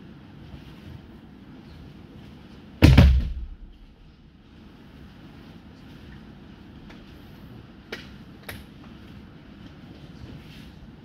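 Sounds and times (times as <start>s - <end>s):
body thud on mats: 2.8s - 3.7s.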